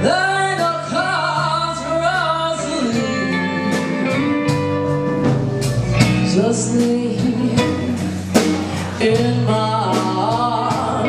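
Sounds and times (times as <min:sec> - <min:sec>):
band with guitar bass and drums: 0:00.0 - 0:11.0
woman singing: 0:06.0 - 0:11.0.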